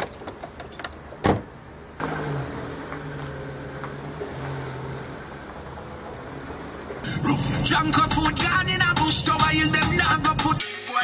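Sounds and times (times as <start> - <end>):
car door shutting: 1.2 - 1.5.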